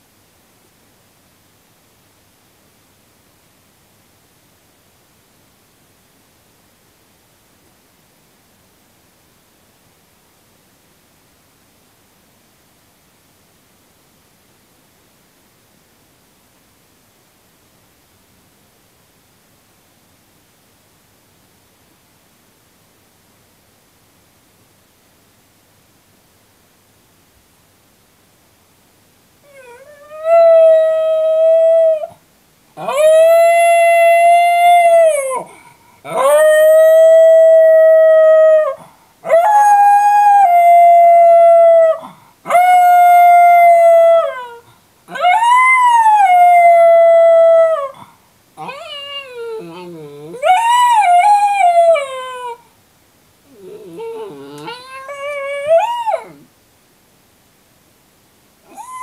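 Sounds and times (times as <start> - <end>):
dog howling: 29.5 - 32.2, 32.8 - 48.0, 48.6 - 52.6, 53.5 - 56.5, 58.7 - 59.0.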